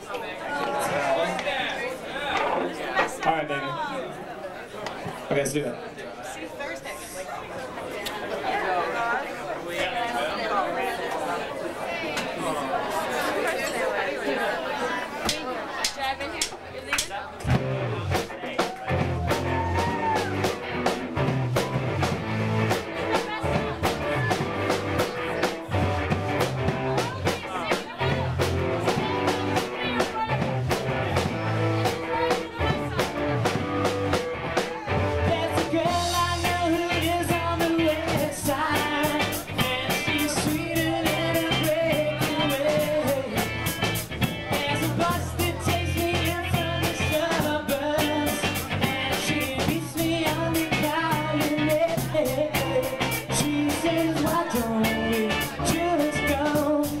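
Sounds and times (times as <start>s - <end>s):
bar crowd chattering: 0.0s - 57.0s
live rock band: 17.0s - 57.0s
person singing: 31.2s - 57.0s.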